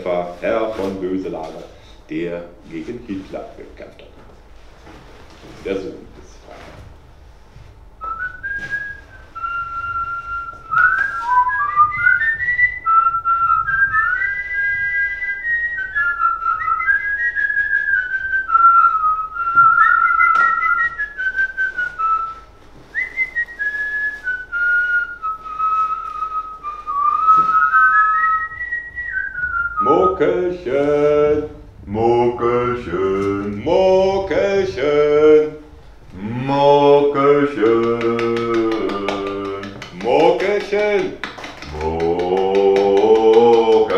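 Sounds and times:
person whistling a tune: 0:08.0 - 0:30.5
man singing or chanting: 0:29.8 - 0:43.9.

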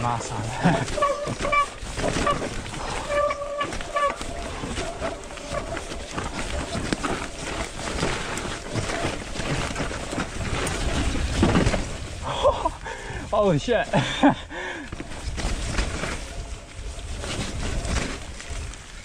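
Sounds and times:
bike knocking and rattling: 0:00.0 - 0:19.0
bike tyres on dirt: 0:00.0 - 0:19.0.

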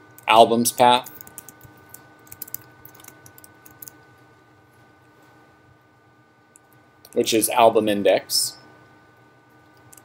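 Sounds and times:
faint steady hum: 0:00.0 - 0:10.0
keyboard keystrokes: 0:01.1 - 0:04.0.

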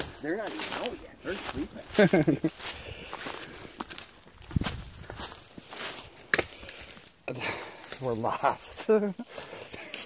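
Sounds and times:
footsteps through undergrowth: 0:00.0 - 0:10.0
sharp cracks of twigs: 0:06.2 - 0:07.0.

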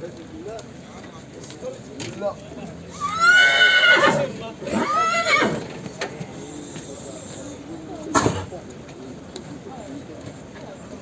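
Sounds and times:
horse neighing: 0:02.9 - 0:05.6.

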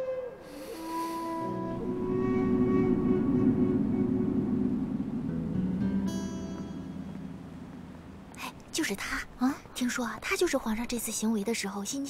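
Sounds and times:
flute-like note bending down: 0:00.0 - 0:08.3
low bowed strings: 0:00.0 - 0:08.8.

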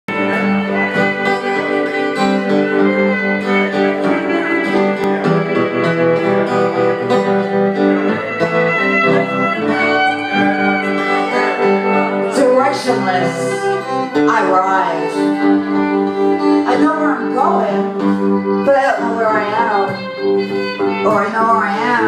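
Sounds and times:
guitar accompaniment: 0:00.1 - 0:22.0
violin sliding notes: 0:00.1 - 0:22.0.

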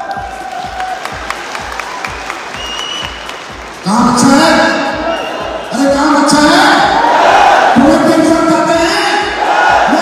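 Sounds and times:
audience applauding: 0:00.0 - 0:03.9
background music with steady beat: 0:00.0 - 0:10.0.

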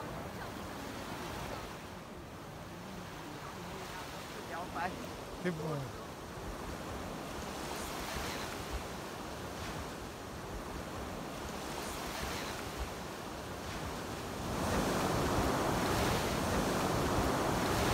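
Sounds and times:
small waves washing on shore: 0:00.0 - 0:17.9.

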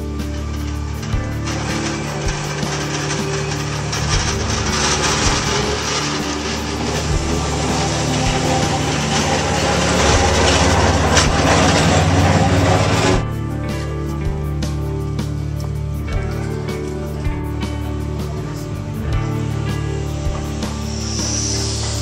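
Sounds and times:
background music: 0:00.0 - 0:22.0
electric tram running on rails: 0:00.0 - 0:22.0.

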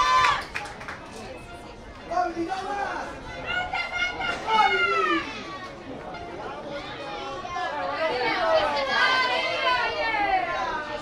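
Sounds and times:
young voices shouting: 0:03.4 - 0:05.5, 0:07.1 - 0:11.0.

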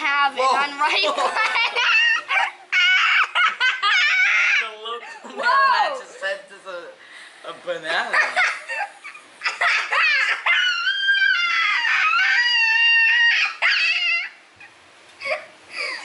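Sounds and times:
boys laughing: 0:00.4 - 0:06.4, 0:07.9 - 0:14.4.

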